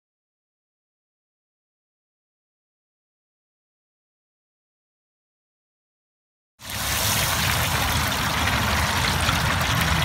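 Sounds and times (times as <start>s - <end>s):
fish sizzling in hot oil: 6.6s - 10.0s
fryer burner rumble: 6.6s - 10.0s.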